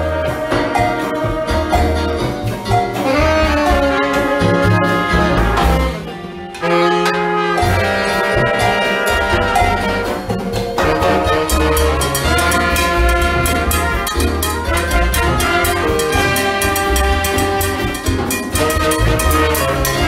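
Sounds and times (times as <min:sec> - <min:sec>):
bass line: 0:00.0 - 0:20.0
drums: 0:00.0 - 0:20.0
saxophone: 0:00.0 - 0:20.0
trumpets: 0:00.0 - 0:20.0.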